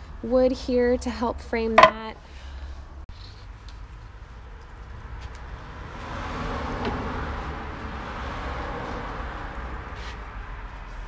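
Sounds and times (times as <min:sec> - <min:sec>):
road traffic rumble: 0:00.0 - 0:11.0
vehicle tyre and engine noise: 0:01.8 - 0:11.0.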